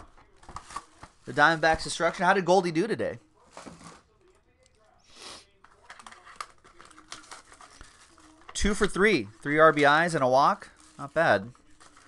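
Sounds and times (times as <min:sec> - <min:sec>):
small crackles: 0:05.6 - 0:08.6
wrapper crinkling: 0:05.6 - 0:12.0
wrapper tearing: 0:05.7 - 0:09.9, 0:10.6 - 0:12.0.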